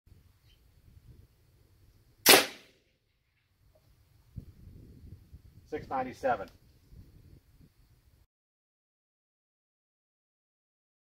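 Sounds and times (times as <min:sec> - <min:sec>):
air rifle shot crack: 0:02.2 - 0:02.8.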